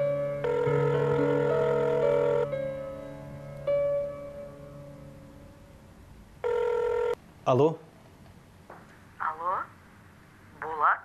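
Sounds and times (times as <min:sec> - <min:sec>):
telephone ringing: 0:00.0 - 0:02.6, 0:06.4 - 0:07.2
held musical note: 0:00.0 - 0:06.2.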